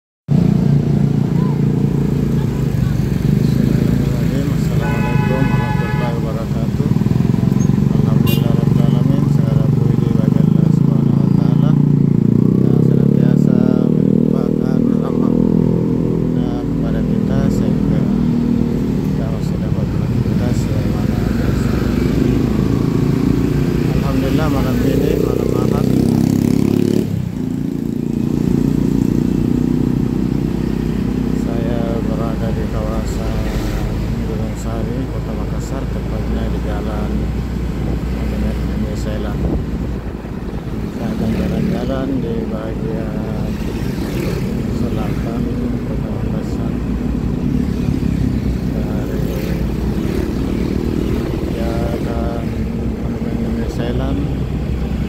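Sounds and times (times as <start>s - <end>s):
motorcycle engine running: 0.3s - 16.6s, 17.3s - 55.0s
traffic: 0.3s - 55.0s.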